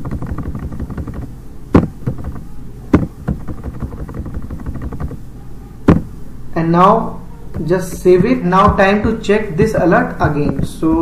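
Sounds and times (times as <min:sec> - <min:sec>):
keyboard and mouse clicks: 0:00.0 - 0:05.2
steady low hum: 0:00.0 - 0:11.0.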